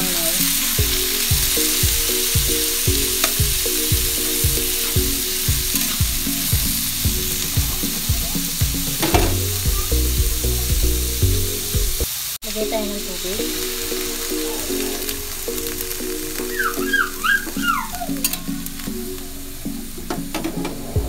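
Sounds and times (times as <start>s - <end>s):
vegetables sizzling in hot oil: 0.0s - 19.3s.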